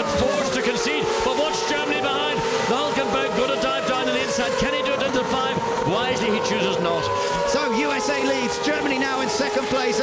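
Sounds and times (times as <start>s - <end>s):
commentary: 0.0s - 10.0s
race car engines at high revs: 0.0s - 10.0s.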